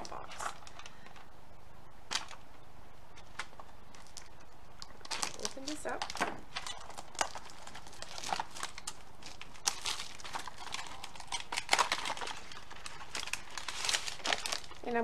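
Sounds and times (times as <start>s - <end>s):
wrapped mints crinkling: 0.0s - 1.3s, 2.1s - 2.5s, 3.1s - 15.0s
cardboard flap tearing: 5.0s - 14.8s.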